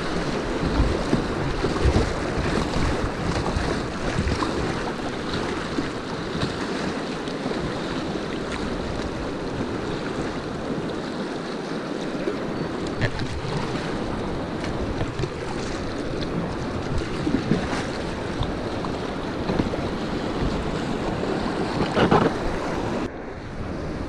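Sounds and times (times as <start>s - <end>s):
wind buffeting microphone: 0.0s - 6.8s, 12.1s - 24.0s
rushing river rapids: 0.0s - 23.2s.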